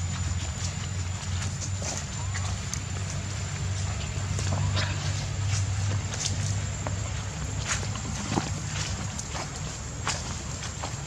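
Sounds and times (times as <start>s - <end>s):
monkeys rustling over dry ground: 0.0s - 11.0s
steady low hum: 0.0s - 11.0s.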